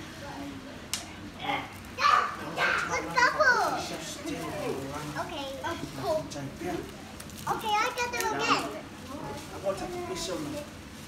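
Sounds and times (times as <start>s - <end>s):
children calling out and chattering: 0.1s - 6.4s, 7.4s - 10.8s.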